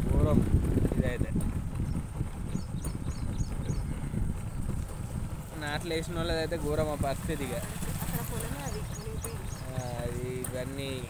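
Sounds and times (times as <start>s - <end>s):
wind buffeting microphone: 0.0s - 11.0s
small bird chirping: 1.8s - 4.7s, 8.0s - 11.0s.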